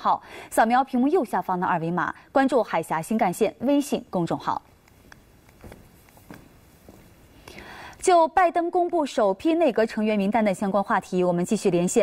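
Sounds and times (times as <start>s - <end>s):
woman breathing in: 7.4s - 8.0s.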